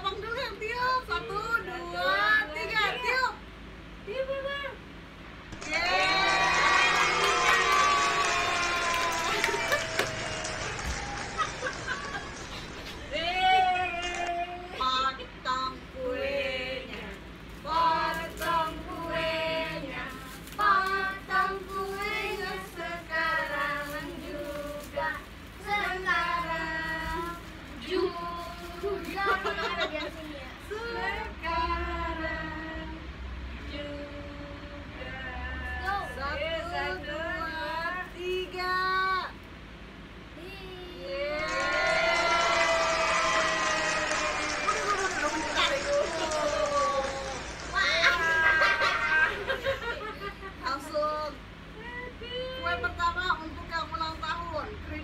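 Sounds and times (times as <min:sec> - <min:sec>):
girl and women singing: 0:15.6 - 0:29.8, 0:30.6 - 0:39.3.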